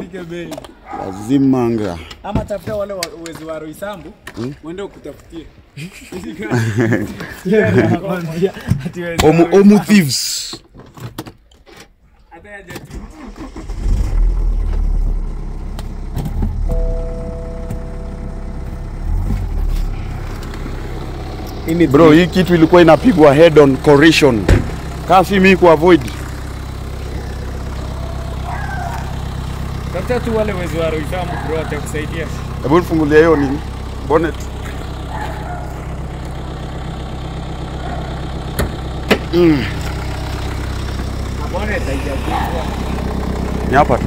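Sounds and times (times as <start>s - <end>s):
car engine running: 13.2s - 44.0s
two-note electronic chime: 16.7s - 18.8s.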